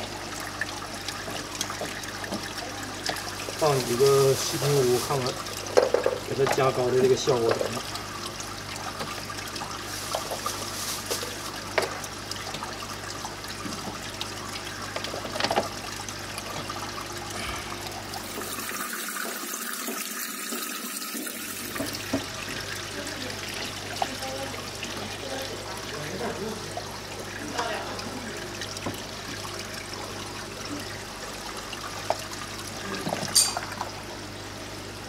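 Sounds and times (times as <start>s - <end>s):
water trickling and splashing: 0.0s - 35.0s.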